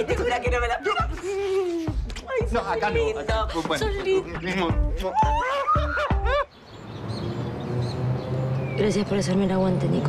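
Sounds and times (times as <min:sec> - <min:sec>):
woman squealing with joy: 0:05.1 - 0:06.5.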